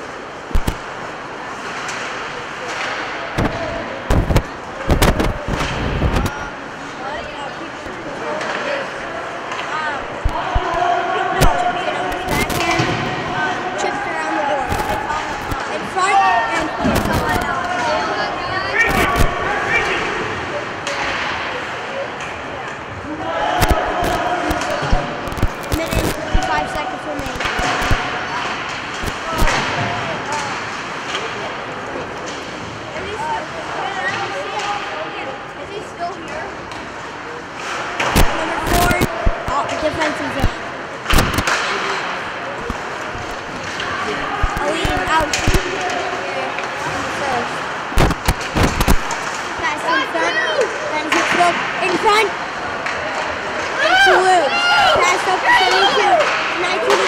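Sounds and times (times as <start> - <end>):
players and spectators shouting: 10.0 - 20.4, 23.0 - 28.0, 43.7 - 48.0, 49.8 - 57.0
puck and sticks knocking on ice: 42.7 - 47.2, 47.9 - 49.6.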